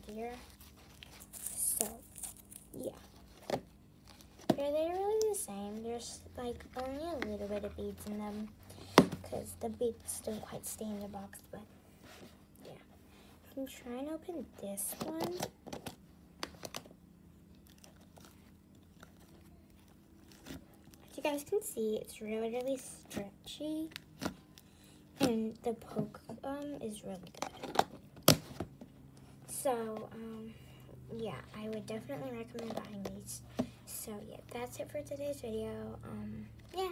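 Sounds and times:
faint handling sounds: 0.0 - 13.7, 14.4 - 35.5.

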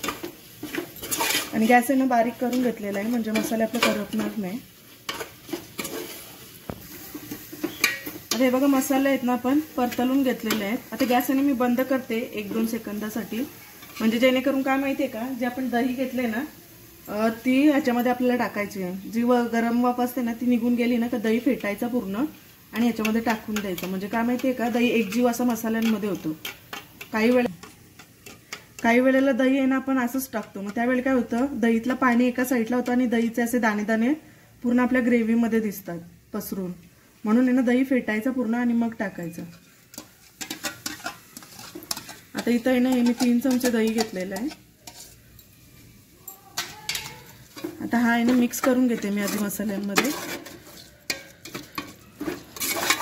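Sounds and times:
spoon scraping and knocking pot: 0.0 - 4.4, 5.1 - 9.0, 9.8 - 11.8, 22.8 - 28.9, 39.4 - 45.2, 46.2 - 53.0.

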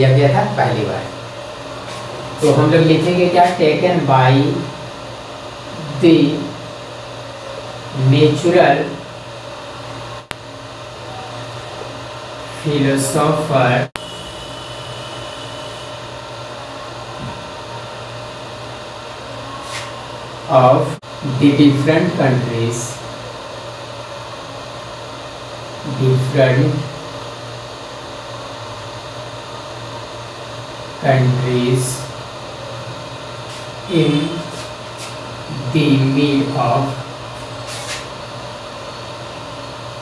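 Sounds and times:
low electrical hum: 0.0 - 40.0.

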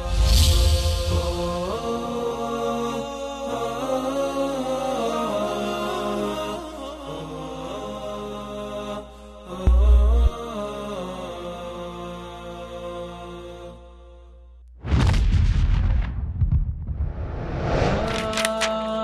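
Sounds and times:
whooshing transition effect: 0.0 - 1.7, 16.8 - 18.3
deep boom: 9.7 - 10.4, 14.8 - 18.1.

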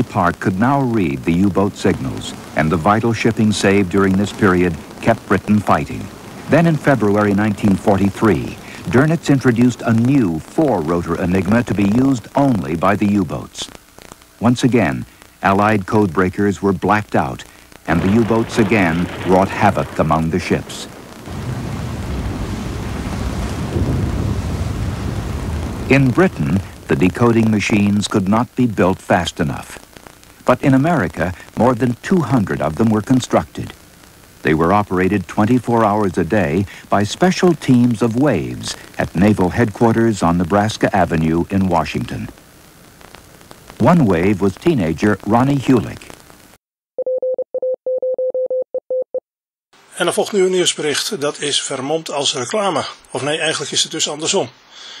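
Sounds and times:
rumbling rush of wind: 18.0 - 27.0
morse code beeps: 47.0 - 49.2.

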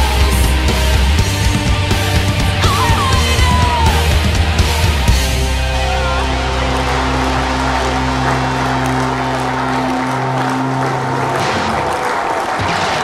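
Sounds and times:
audience applauding: 2.4 - 13.0.

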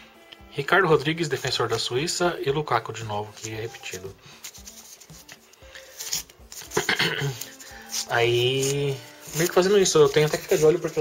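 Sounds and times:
faint music: 0.0 - 11.0
card pack wrappers rustling: 3.3 - 11.0.

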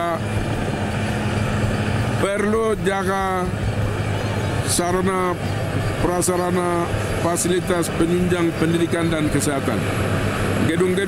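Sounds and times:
steady engine drone: 0.0 - 11.0.

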